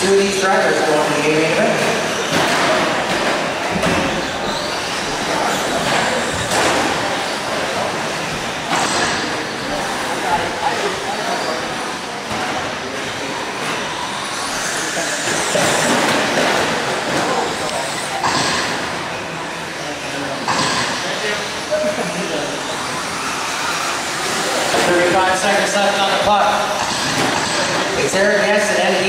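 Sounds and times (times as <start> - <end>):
rc trucks motor and tyre noise: 0.0 - 29.0.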